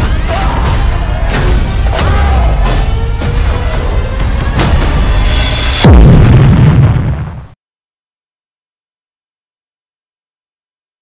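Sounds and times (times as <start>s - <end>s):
explosion rumbling: 4.6s - 7.5s.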